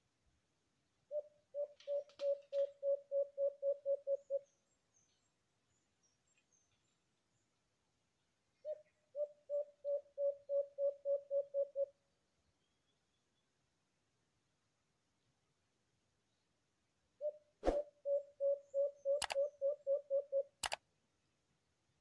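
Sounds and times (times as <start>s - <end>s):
dove cooing: 1.1s - 4.4s, 8.6s - 11.9s, 17.2s - 20.5s.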